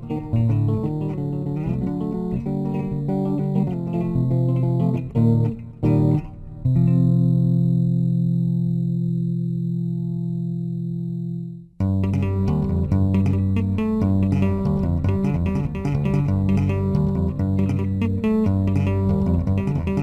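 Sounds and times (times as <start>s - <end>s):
bass guitar notes: 0.0s - 20.0s.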